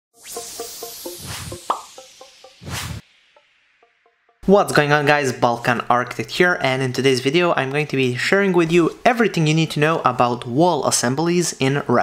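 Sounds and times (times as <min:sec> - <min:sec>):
whooshing swell: 0:00.2 - 0:03.7.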